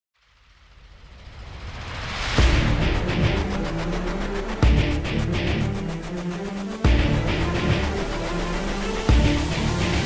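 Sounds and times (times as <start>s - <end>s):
rumbling hissing riser effect: 0.2s - 10.0s.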